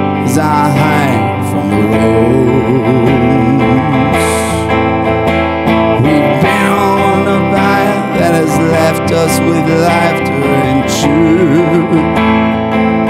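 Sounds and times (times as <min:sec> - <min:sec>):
electric guitar strummed: 0:00.0 - 0:13.0.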